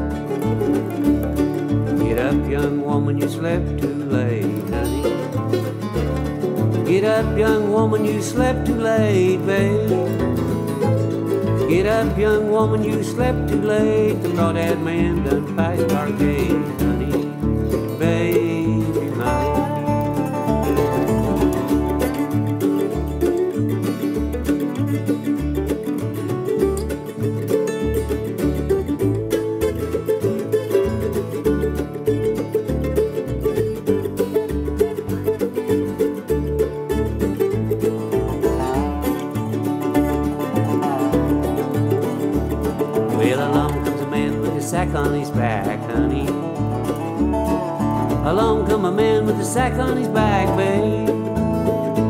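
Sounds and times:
banjo: 0.0 - 52.0
fast-picked string instruments: 0.0 - 52.0
person singing: 1.8 - 5.4, 6.7 - 23.3, 38.0 - 52.0
steady bass beat: 15.0 - 52.0.

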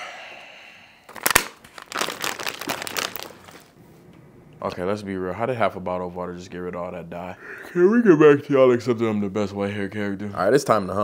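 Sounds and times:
plastic bottle crinkling: 1.1 - 3.8.

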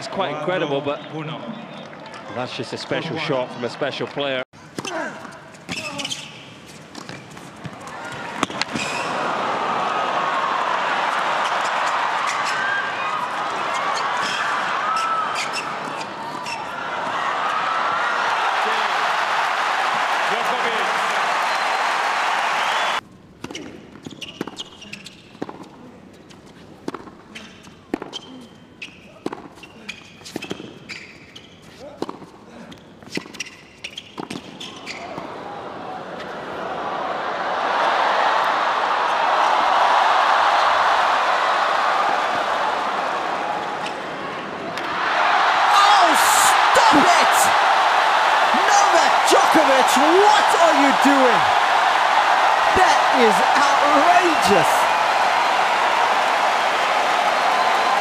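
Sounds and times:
crowd cheering and applauding: 9.0 - 15.1, 17.0 - 23.0, 36.4 - 58.0.

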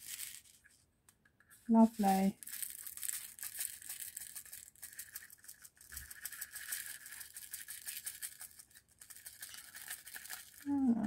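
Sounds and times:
small plastic beads rattling in tray: 0.0 - 0.6, 1.5 - 11.0.

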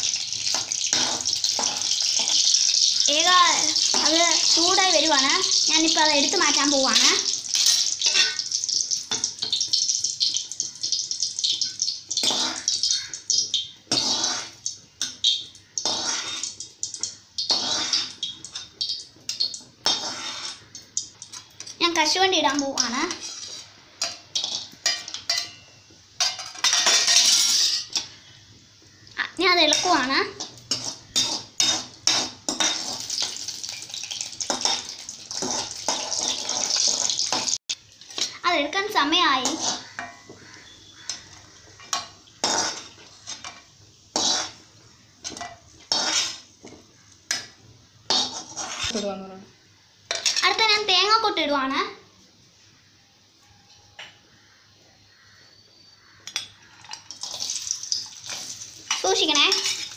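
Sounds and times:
food sizzling in hot oil: 0.0 - 52.2, 54.4 - 59.9
metal ladle scraping a pan: 6.4 - 8.5, 13.9 - 16.6, 17.4 - 21.8, 22.8 - 28.1, 29.7 - 33.8, 34.5 - 38.3, 39.4 - 47.4, 48.1 - 49.0, 58.2 - 59.9.

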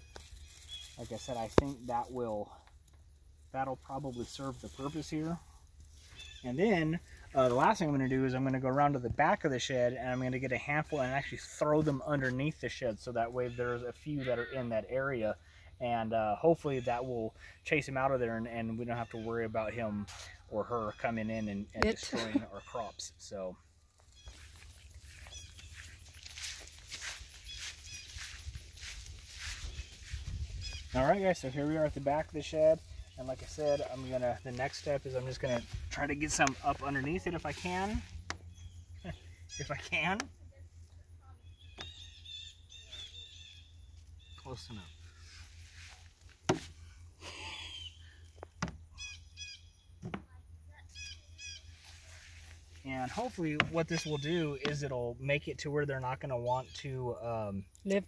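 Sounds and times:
bird calling: 0.0 - 2.8, 3.8 - 8.3, 18.3 - 50.2, 50.8 - 55.1
footsteps through grass: 0.0 - 7.9, 23.6 - 40.0, 42.7 - 47.6, 51.5 - 54.3.

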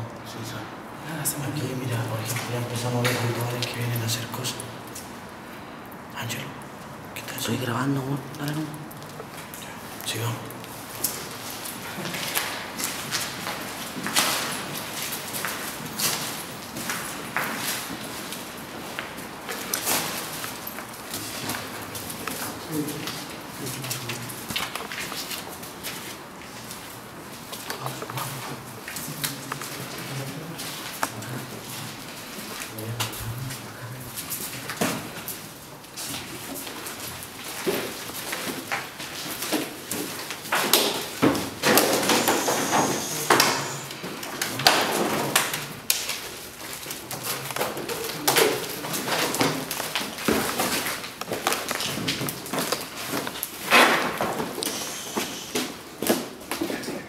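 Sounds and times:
indistinct voices: 27.6 - 35.1, 41.6 - 45.9, 54.6 - 55.8.

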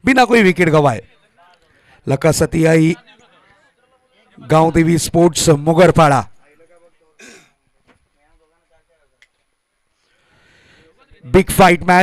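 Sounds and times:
person clearing throat: 7.2 - 7.6.

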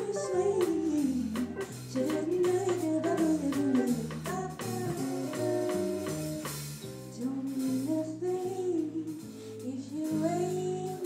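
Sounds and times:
bass line: 0.0 - 11.0
live band playing: 0.0 - 11.0
woman singing jazz: 0.0 - 11.0.

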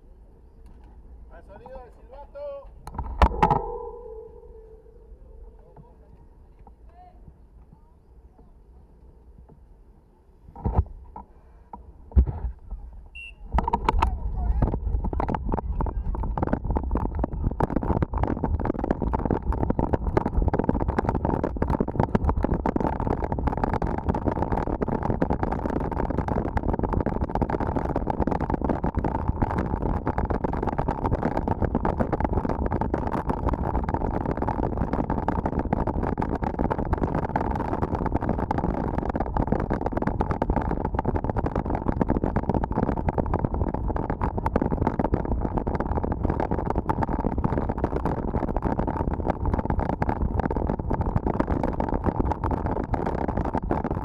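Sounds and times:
wind buffeting microphone: 1.2 - 8.0, 11.9 - 54.0
sharp knocks: 3.0 - 5.1
bike rattling over gravel: 13.6 - 54.0.

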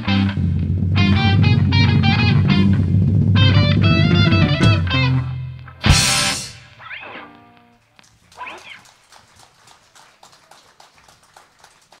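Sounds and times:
audience clapping: 7.9 - 12.0.

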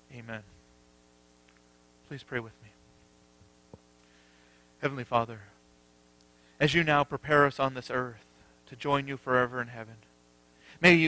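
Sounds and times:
low electrical hum: 0.0 - 11.0
man speaking: 2.1 - 2.8, 4.8 - 5.6, 6.6 - 10.0, 10.8 - 11.0.

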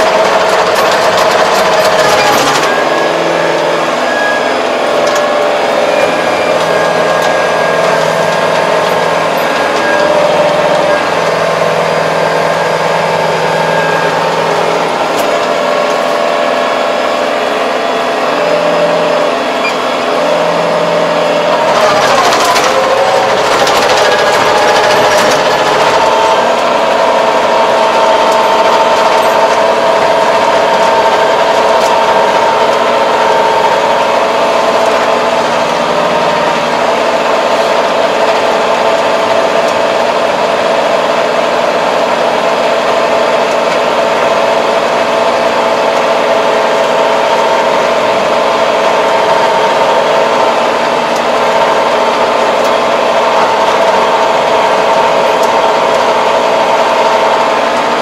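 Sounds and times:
tractor engine running under load: 0.0 - 58.0.

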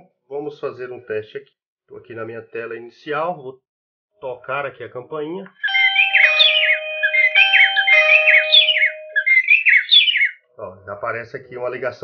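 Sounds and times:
doorbell chime melody: 5.6 - 9.7.

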